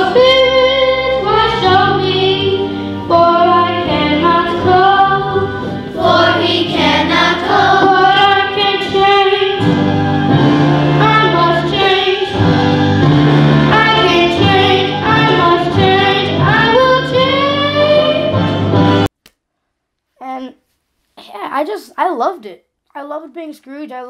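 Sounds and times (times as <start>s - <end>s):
instrumental accompaniment: 0.0s - 19.1s.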